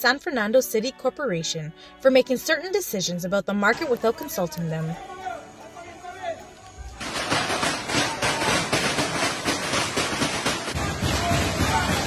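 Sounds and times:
metal tables rattled and banged: 7.0s - 12.0s.

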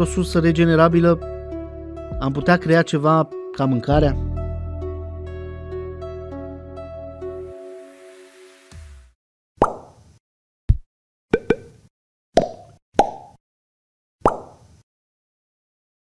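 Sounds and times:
background music: 0.0s - 9.2s.

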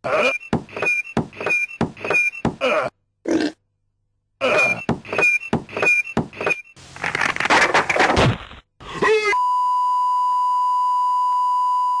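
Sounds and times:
steady electronic beep: 0.2s - 2.5s, 4.6s - 6.8s.

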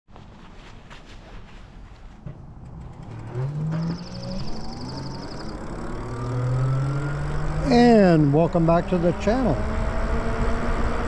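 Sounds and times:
electric bike motor whining: 2.6s - 8.4s.

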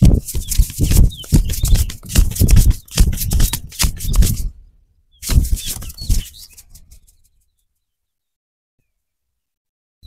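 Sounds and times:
hands rubbing hair: 0.0s - 4.5s, 5.2s - 7.0s.

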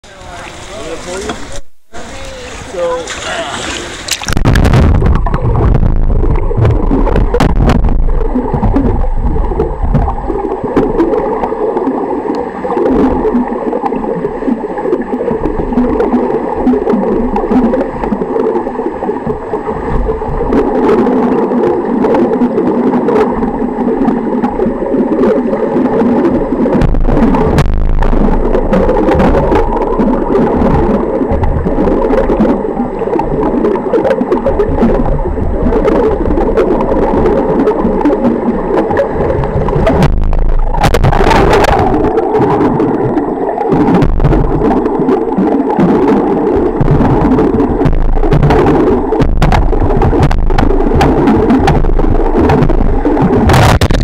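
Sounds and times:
muffled underwater hum: 0.0s - 54.0s
water bubbling: 0.0s - 54.0s.

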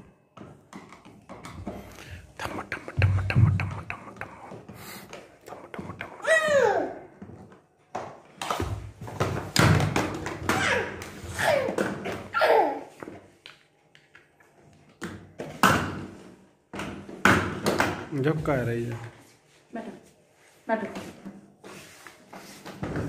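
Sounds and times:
knocks and thumps on hard floor: 3.0s - 4.0s, 8.0s - 10.6s.

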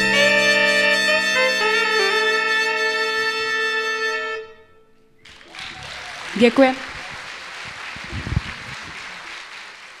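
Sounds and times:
audience applauding: 5.2s - 10.0s.

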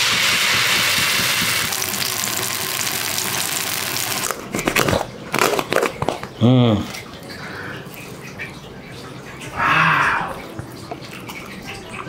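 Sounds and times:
batter sizzling on griddle: 0.0s - 4.4s.

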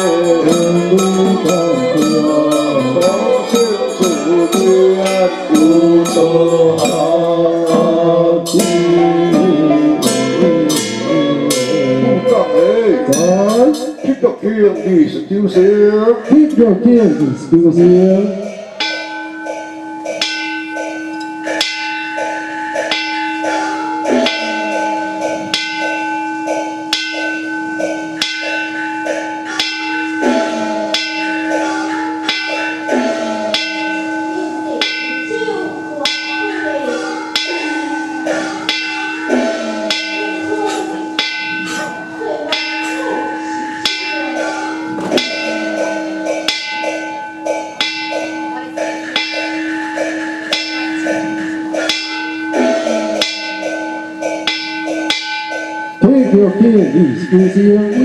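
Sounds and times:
metal bowl bell ringing: 0.0s - 15.3s, 15.9s - 58.0s
man chanting: 0.0s - 18.9s, 29.6s - 34.0s, 37.1s - 40.2s, 50.5s - 53.5s, 56.0s - 58.0s.

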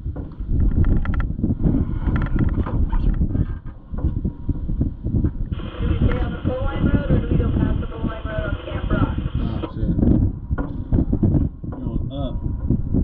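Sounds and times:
chassis rattling and knocking: 0.0s - 4.6s, 10.0s - 12.9s.

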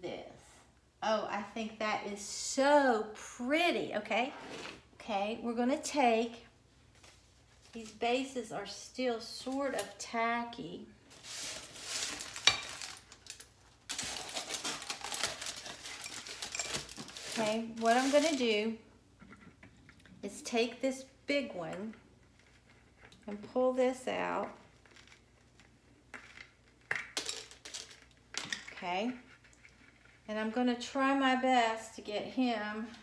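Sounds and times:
aluminium foil crackling: 11.1s - 18.8s.

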